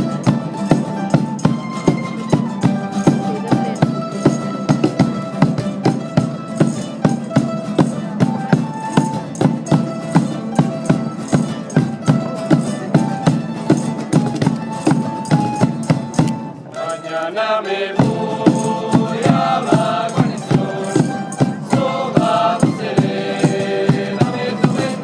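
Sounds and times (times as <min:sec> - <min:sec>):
guitars and bandolins strummed: 0:00.0 - 0:25.0
bass drum keeping time: 0:18.0 - 0:25.0.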